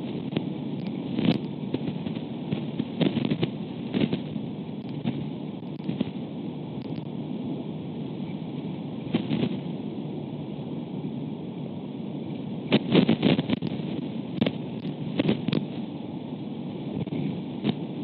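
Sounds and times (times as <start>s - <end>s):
wind gusts thumping on microphone: 0.0s - 6.2s, 9.0s - 9.8s, 12.6s - 15.9s, 16.8s - 18.0s
wind noise: 0.0s - 10.0s, 12.1s - 18.0s.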